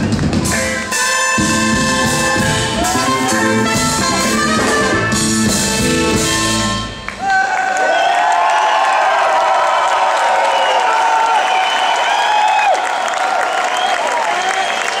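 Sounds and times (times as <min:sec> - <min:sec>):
band music: 0:00.0 - 0:07.5
audience applauding: 0:07.0 - 0:15.0.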